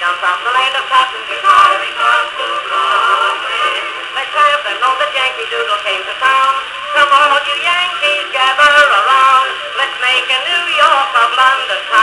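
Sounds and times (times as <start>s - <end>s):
man singing ragtime song on phonograph: 0.0s - 12.0s.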